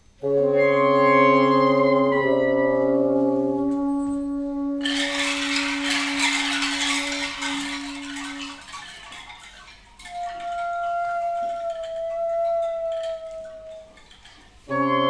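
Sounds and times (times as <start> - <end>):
held low horn note: 0.2 - 6.2.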